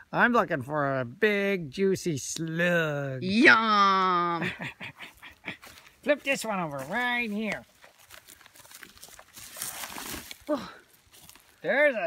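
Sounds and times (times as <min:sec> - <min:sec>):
log scraping on leaf litter: 0:06.2 - 0:11.6.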